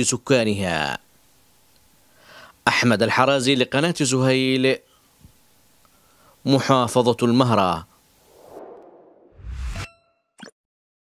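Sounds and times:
whoosh: 8.3 - 9.9.

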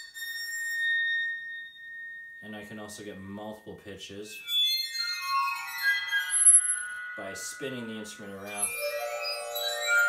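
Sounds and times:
bowed metal rod ringing tone: 0.0 - 10.0.

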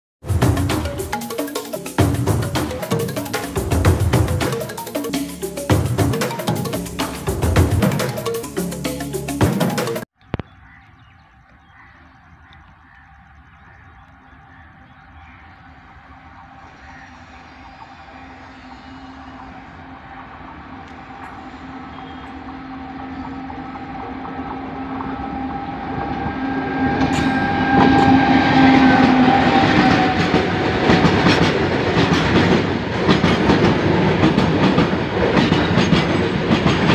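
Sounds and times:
wheels rumbling on rails: 0.2 - 9.2, 10.8 - 36.9
electric locomotive hum: 0.2 - 10.0, 10.6 - 36.9.

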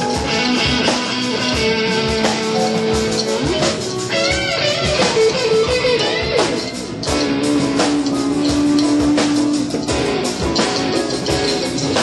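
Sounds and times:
drum kit steady beat: 0.0 - 12.0
electric guitar lead with bent notes: 0.0 - 12.0.

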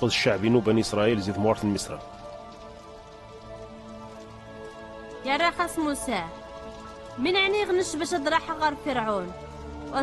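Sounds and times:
soft music of held chords: 0.0 - 10.0.

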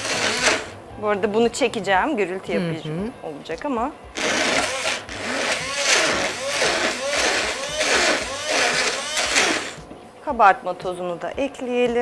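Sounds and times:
stick blender whirring: 0.0 - 0.8, 4.1 - 9.9.

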